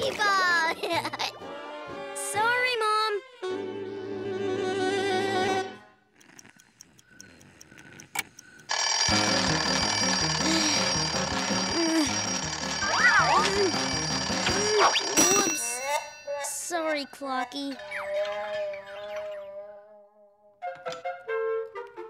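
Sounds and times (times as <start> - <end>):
cartoon alarm clock ticking: 6.1 - 18.1
alarm clock ringing: 8.6 - 17.7
bouncy music: 9.1 - 16.3.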